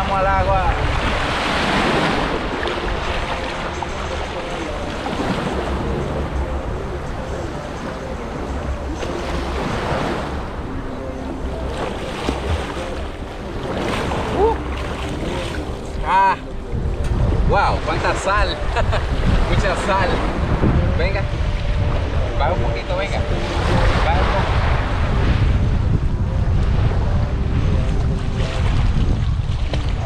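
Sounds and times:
wind buffeting microphone: 0:00.0 - 0:30.0
sea water sloshing and splashing: 0:00.6 - 0:06.0, 0:07.6 - 0:17.0, 0:28.3 - 0:30.0.

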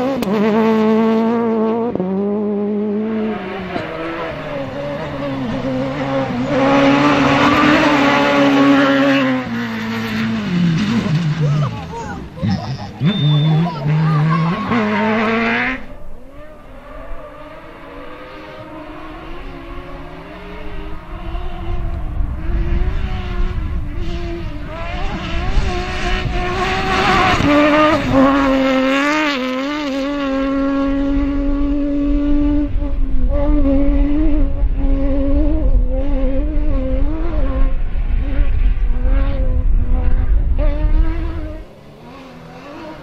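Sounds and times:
car passing with wavering revs: 0:00.0 - 0:43.0
rally car engine revving: 0:00.0 - 0:43.0.

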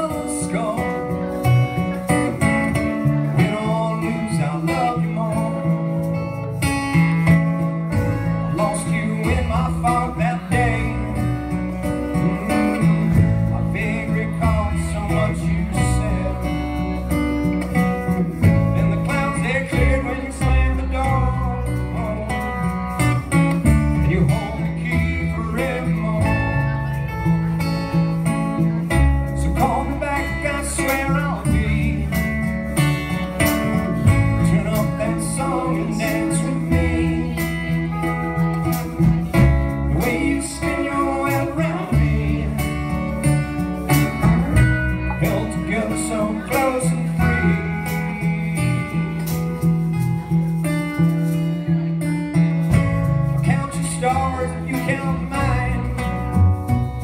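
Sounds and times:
man singing: 0:00.0 - 0:50.3, 0:51.1 - 0:57.0
live band playing: 0:00.0 - 0:57.0.

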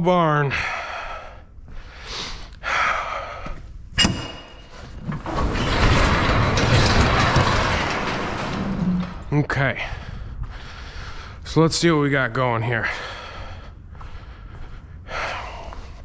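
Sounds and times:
garage door clunk: 0:04.0 - 0:10.5
garage door rolling on metal tracks: 0:04.0 - 0:11.9.

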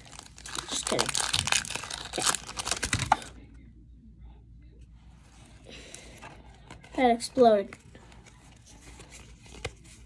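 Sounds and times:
cards rustling: 0:00.0 - 0:03.4, 0:05.8 - 0:10.0.

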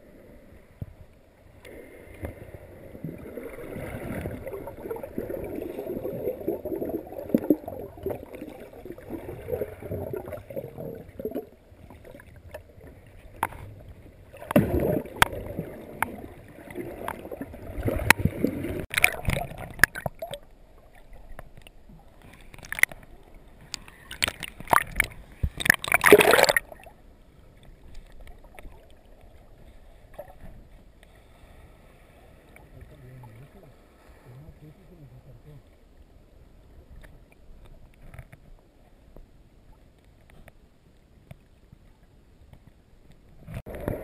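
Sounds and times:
rush of water: 0:00.0 - 0:27.0
faint ticks underwater: 0:18.9 - 0:31.5, 0:36.6 - 0:44.0.

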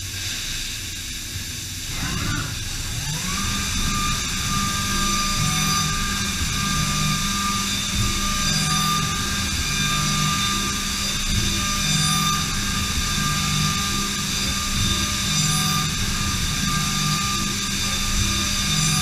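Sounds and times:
coolant spray hiss: 0:00.0 - 0:19.0
milling machine spindle whine: 0:01.4 - 0:19.0.

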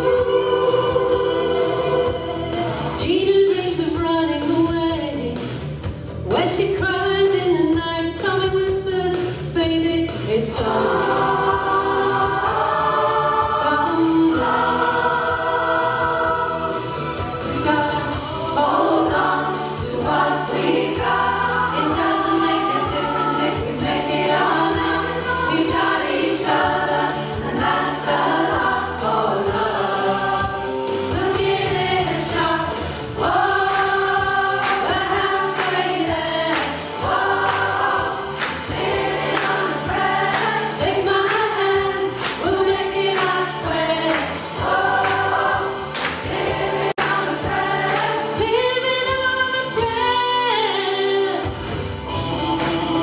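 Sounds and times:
choir singing a pop-rock song: 0:00.0 - 0:53.0.

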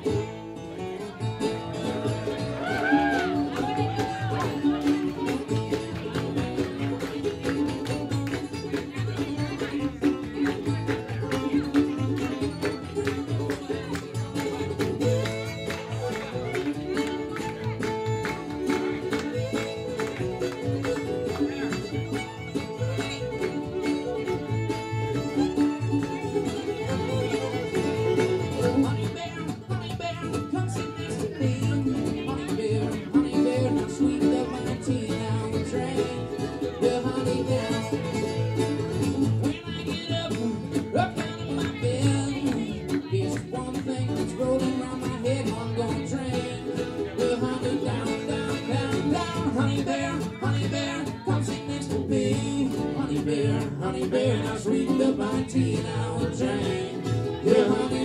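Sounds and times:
fiddle: 0:00.0 - 0:58.0
mandolin: 0:00.0 - 0:58.0
strummed acoustic guitar: 0:00.0 - 0:58.0
upright bass: 0:00.0 - 0:58.0.

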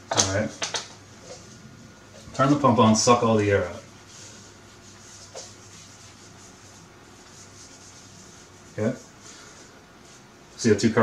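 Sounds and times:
eraser rubbing on whiteboard: 0:03.8 - 0:10.3.

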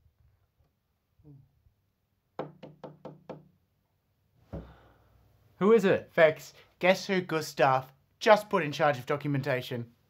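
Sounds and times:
knuckles knocking on door: 0:02.4 - 0:03.5.

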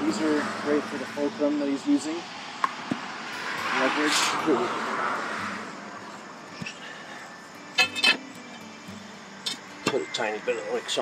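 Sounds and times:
car passing by: 0:00.0 - 0:06.5.

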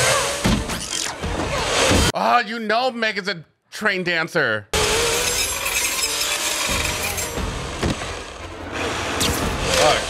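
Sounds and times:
hedge trimmer buzzing: 0:04.8 - 0:09.0.

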